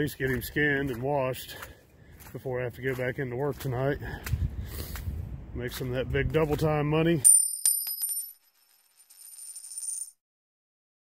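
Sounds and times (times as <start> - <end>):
coins rattling: 7.3 - 10.2.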